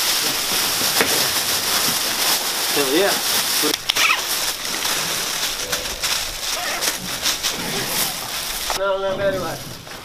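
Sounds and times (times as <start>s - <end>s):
faint voices: 0.0s - 9.7s
nylon webbing and plastic rustling: 0.0s - 10.0s.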